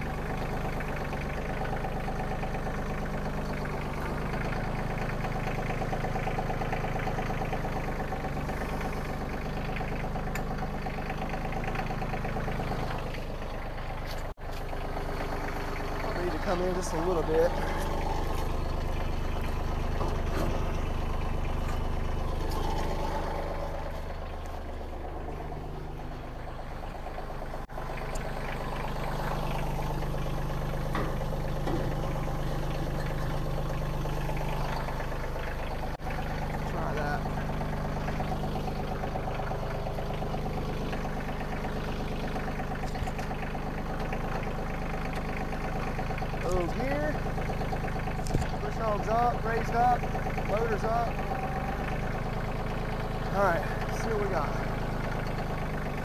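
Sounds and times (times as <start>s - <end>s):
diesel tractor engine idling: 0.0s - 56.0s.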